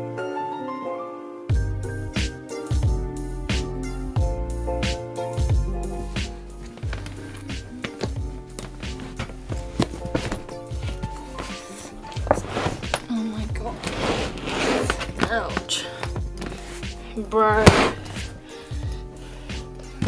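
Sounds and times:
background music: 0:00.0 - 0:20.0
plastic suitcase knocks and thumps: 0:07.9 - 0:11.2, 0:12.2 - 0:16.6, 0:17.5 - 0:18.3.

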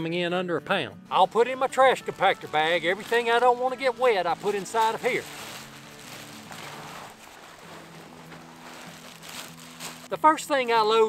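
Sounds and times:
plastic bag rustling: 0:01.3 - 0:10.2.

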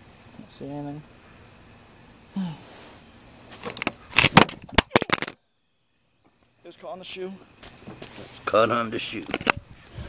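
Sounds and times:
camera knocking and clattering: 0:03.7 - 0:05.4, 0:09.3 - 0:09.6.

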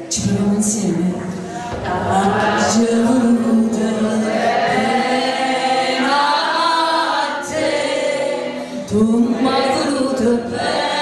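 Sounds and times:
woman singing through loudspeaker: 0:00.0 - 0:11.0.

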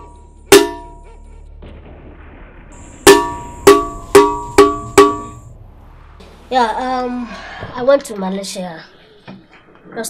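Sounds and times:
ringing metal percussion strikes: 0:00.0 - 0:01.2, 0:03.0 - 0:05.5.

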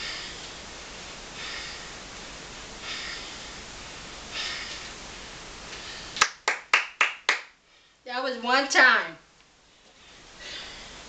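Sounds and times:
hands clapping: 0:06.2 - 0:07.6.

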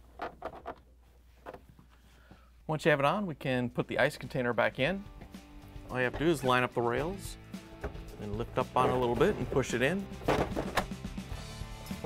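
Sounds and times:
soft background music: 0:03.7 - 0:12.0.

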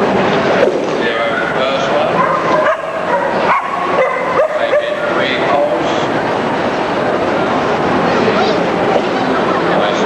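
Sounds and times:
busy hall background noise: 0:00.0 - 0:10.0
dog barking and yelping: 0:02.2 - 0:05.0.

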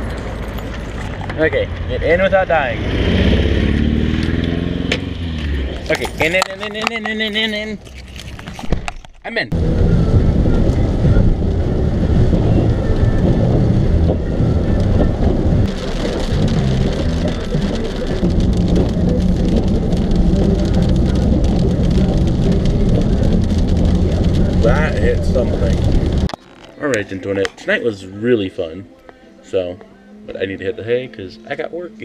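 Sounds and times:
car engine rumble: 0:00.0 - 0:27.0.

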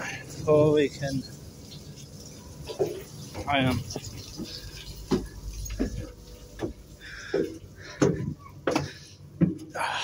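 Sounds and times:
footsteps on metal stairs: 0:03.9 - 0:09.8.

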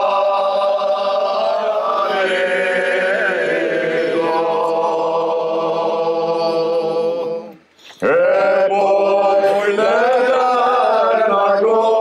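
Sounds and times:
men singing in close harmony: 0:00.0 - 0:12.0.

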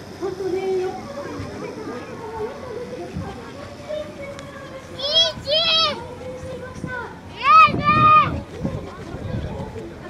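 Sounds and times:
outdoor crowd: 0:00.0 - 0:10.0.

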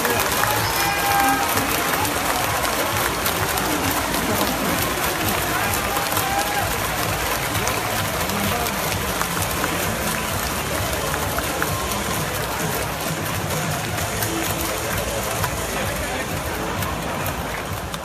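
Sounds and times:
scattered clapping: 0:00.0 - 0:18.0
stadium crowd din: 0:00.0 - 0:18.0.

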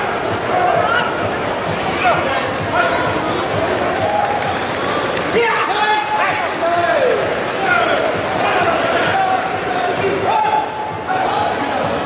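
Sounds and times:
voices shouting in echoing hall: 0:00.0 - 0:12.0.

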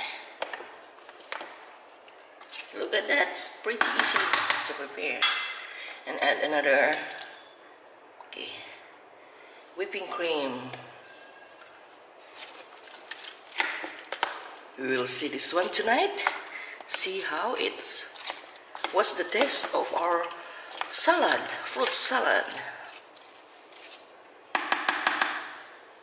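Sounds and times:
spatula stirring wet fruit: 0:00.4 - 0:04.7, 0:10.3 - 0:24.2
spatula tapping plastic tub: 0:24.5 - 0:25.6.

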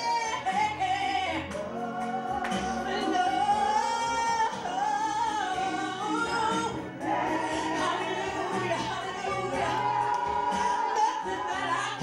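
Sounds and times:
woman singing gospel song: 0:00.0 - 0:12.0.

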